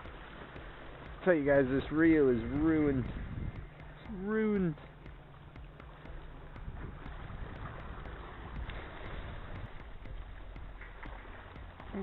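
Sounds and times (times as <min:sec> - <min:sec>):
small waves washing against rocks: 0:00.0 - 0:12.0
wind rumbling on microphone: 0:00.0 - 0:12.0.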